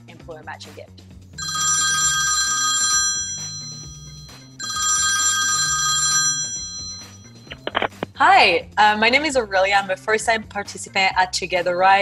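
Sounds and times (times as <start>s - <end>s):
telephone ringing with trilling bell: 1.4s - 7.5s.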